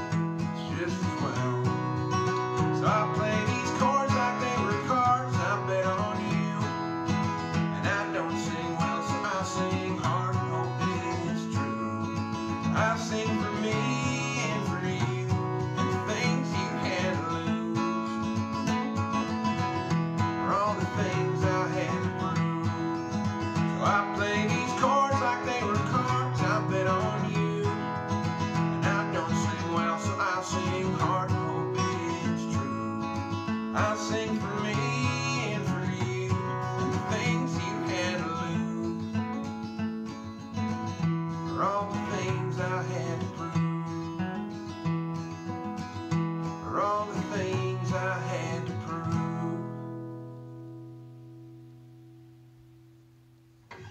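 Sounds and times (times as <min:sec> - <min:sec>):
acoustic guitar strumming chords: 0:00.0 - 0:53.9.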